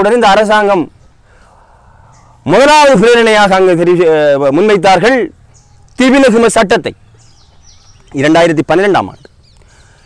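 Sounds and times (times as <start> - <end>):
man speaking: 2.4 - 7.0, 8.1 - 9.3
faint high bird chirps: 5.4 - 10.0.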